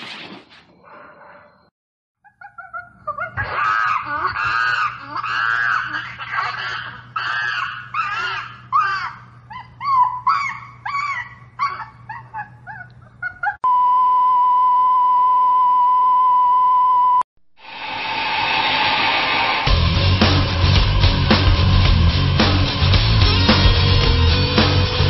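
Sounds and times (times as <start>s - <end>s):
chimpanzee screeching: 2.2s - 13.6s.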